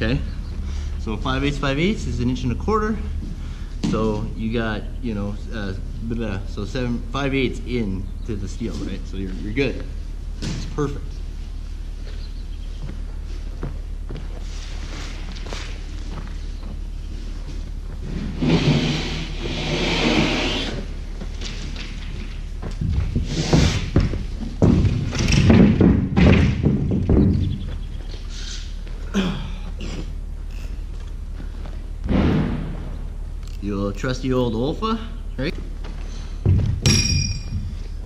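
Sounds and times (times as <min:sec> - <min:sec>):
drywall scraping: 0:18.0 - 0:21.7, 0:22.9 - 0:27.6
heavy thumps of drywall: 0:22.8 - 0:27.7, 0:36.4 - 0:37.8.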